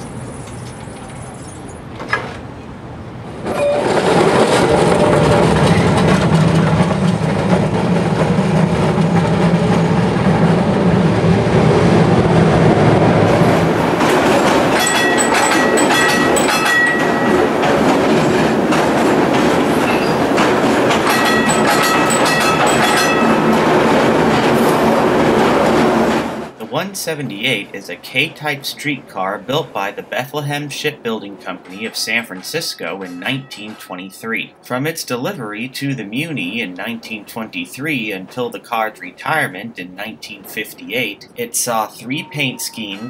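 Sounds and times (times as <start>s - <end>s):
streetcar rumbling on rails: 0.0s - 43.0s.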